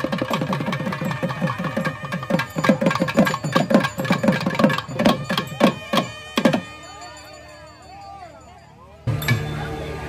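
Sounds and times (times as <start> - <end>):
thavil drums playing fast strokes: 0.0 - 7.0.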